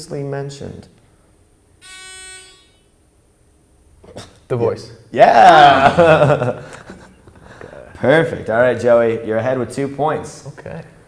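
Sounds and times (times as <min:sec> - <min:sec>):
game show buzzer tone: 0:01.8 - 0:03.0.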